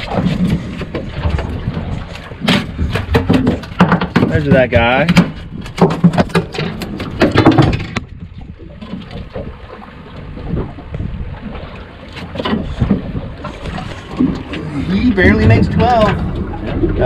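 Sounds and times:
sea noise: 0.0s - 17.0s
wind: 0.0s - 17.0s
knocks and thumps: 0.1s - 8.2s.

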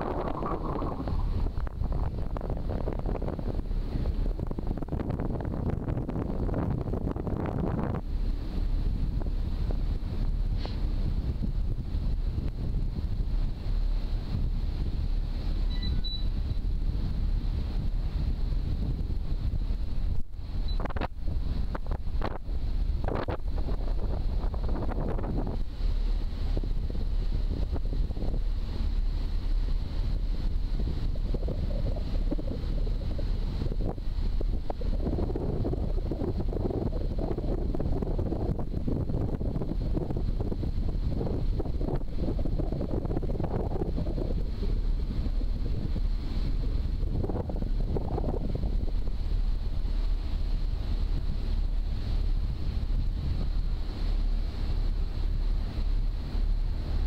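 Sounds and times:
ferry engine rumble: 0.0s - 57.0s
wind buffeting microphone: 0.0s - 57.0s.

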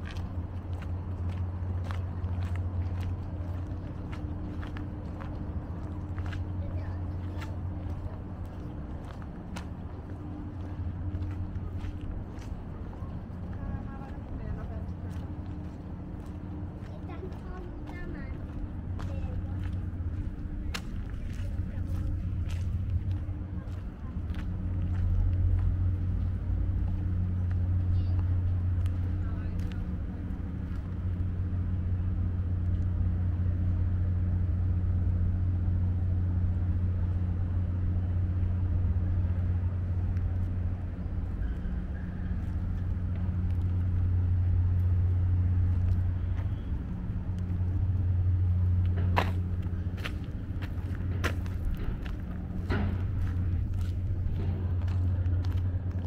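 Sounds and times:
low engine-like hum: 0.0s - 56.0s.

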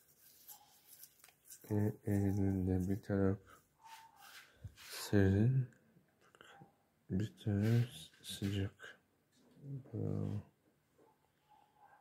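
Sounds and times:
man speaking: 1.6s - 3.4s, 4.9s - 5.8s, 7.1s - 9.0s, 9.6s - 10.5s.

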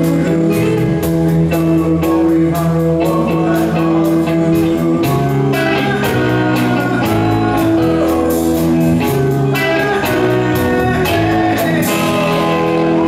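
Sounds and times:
bass guitar: 0.0s - 13.0s
drums and cymbals: 0.0s - 13.0s
electric guitar: 0.0s - 13.0s.

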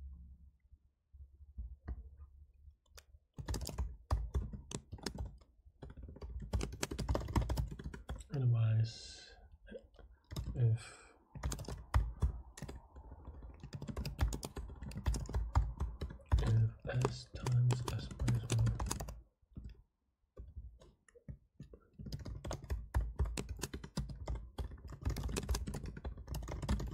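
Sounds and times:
typing on computer keyboard: 3.4s - 8.3s, 10.2s - 10.6s, 11.3s - 19.8s, 21.6s - 26.9s.

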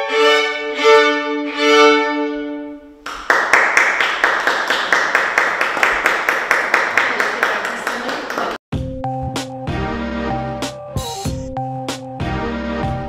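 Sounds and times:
audience applause: 3.1s - 8.6s.

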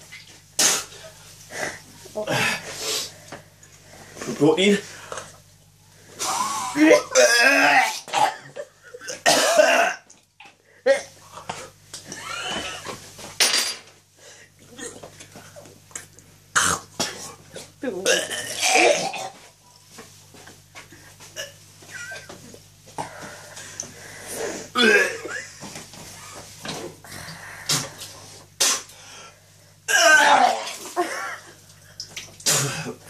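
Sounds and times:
man gagging: 6.2s - 9.4s, 29.9s - 31.4s
man belching: 6.7s - 10.0s, 18.1s - 19.4s, 29.9s - 30.7s
man coughing: 6.9s - 10.0s.

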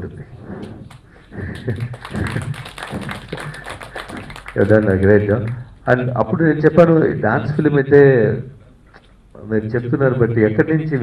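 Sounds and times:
audience clapping: 0.8s - 5.8s.

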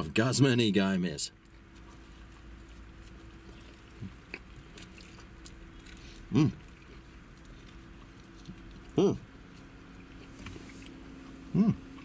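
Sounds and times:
person chewing food: 1.4s - 12.0s
person humming mmm: 11.5s - 12.0s.

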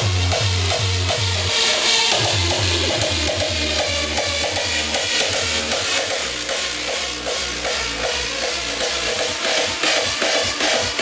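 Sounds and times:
hardstyle dance music: 0.0s - 11.0s
heavy kick-drum beat: 0.0s - 11.0s.

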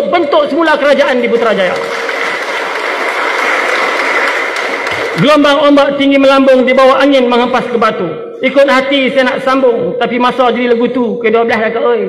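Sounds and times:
audience applauding: 1.1s - 5.5s.

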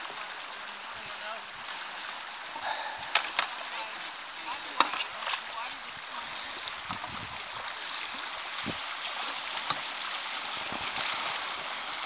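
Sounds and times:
river current rushing: 0.0s - 12.0s
paddle knocks and splashes: 2.6s - 3.9s, 4.5s - 11.7s.

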